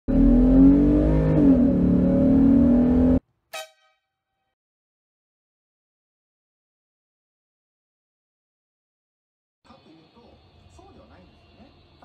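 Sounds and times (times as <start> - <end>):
car engine running hard: 0.1 - 3.2.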